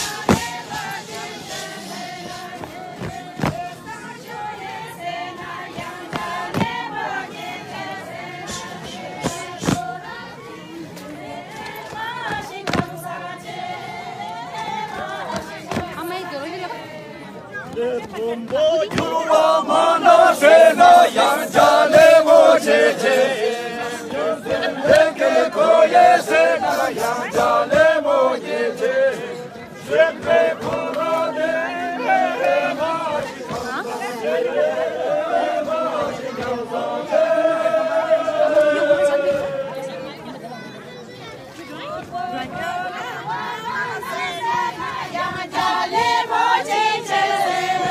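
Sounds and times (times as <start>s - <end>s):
men and women singing together: 0.0s - 40.2s, 41.8s - 47.9s.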